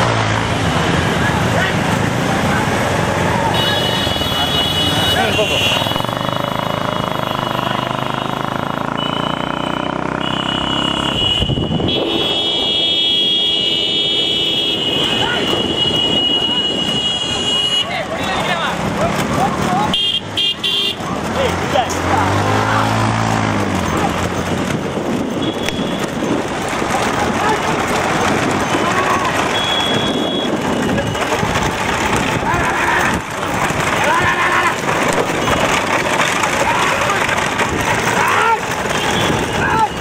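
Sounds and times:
motorcycle passing by: 0.0s - 17.4s, 18.0s - 40.0s
motorcycle engines: 0.0s - 40.0s
long steady horn-like tone: 10.2s - 17.9s
men shouting: 21.2s - 23.2s, 26.8s - 30.0s, 32.0s - 40.0s.

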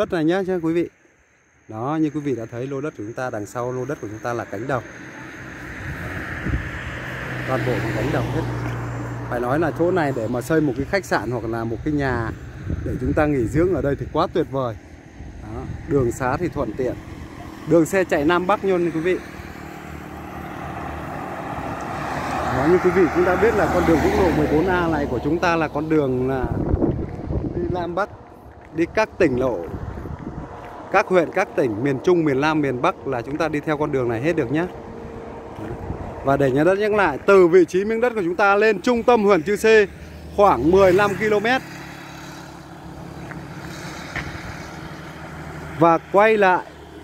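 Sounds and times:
truck engine and tyre noise: 0.0s - 47.0s
motorbike passing by: 2.6s - 47.0s.

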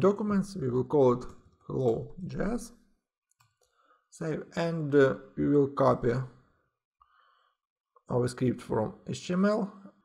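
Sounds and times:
man speaking: 0.0s - 2.8s, 4.2s - 6.3s, 8.1s - 9.8s
computer mouse clicks: 3.3s - 3.8s.

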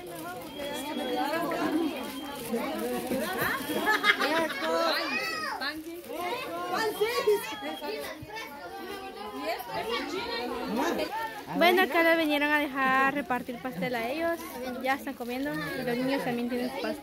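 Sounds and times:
adults talking: 0.0s - 17.0s
children chattering: 0.0s - 17.0s.

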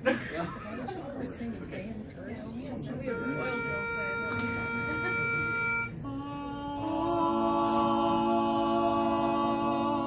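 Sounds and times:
pitch pipe note: 3.1s - 6.0s
vocal quartet singing held notes: 3.1s - 10.0s.

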